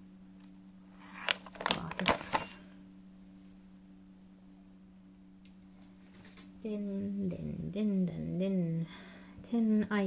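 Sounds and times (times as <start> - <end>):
plastic snack bag crinkling: 1.0 - 2.6.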